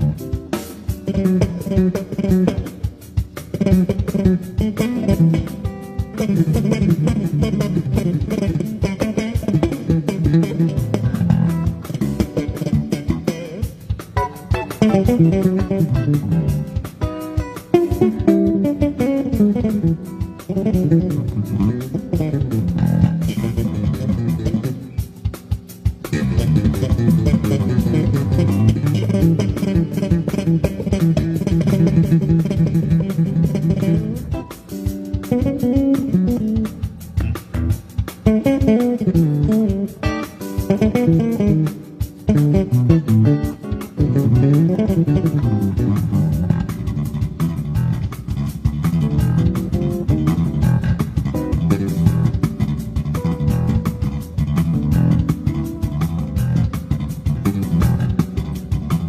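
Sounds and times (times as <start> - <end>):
electric bass guitar runs: 0.0 - 59.0.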